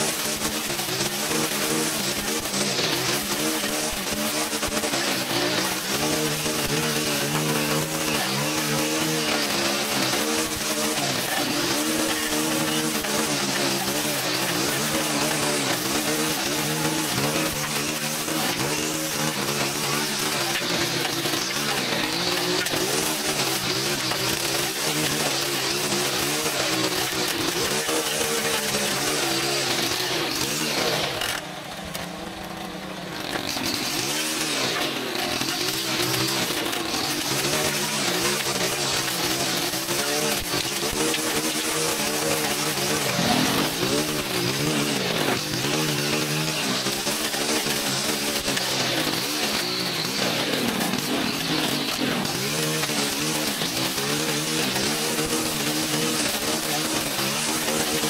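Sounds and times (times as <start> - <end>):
string trimmer cutting brush: 0.0 - 58.0.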